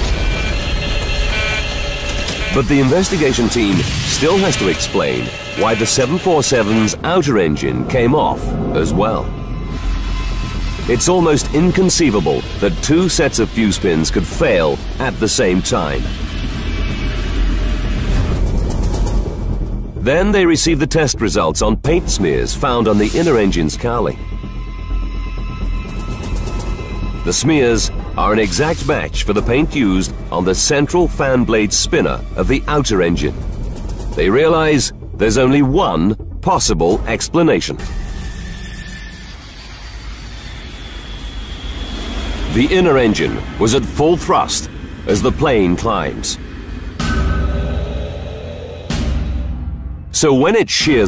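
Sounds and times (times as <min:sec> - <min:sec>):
jet airliner rumble: 0:00.0 - 0:38.0, 0:39.2 - 0:49.2
background music: 0:00.0 - 0:51.0
high whine: 0:00.0 - 0:51.0.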